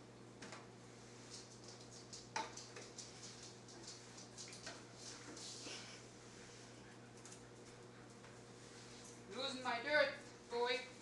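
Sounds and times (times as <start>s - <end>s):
dog claws clicking on tile floor: 1.2s - 5.4s
mop swishing across tiles: 3.1s - 6.9s, 7.6s - 9.4s.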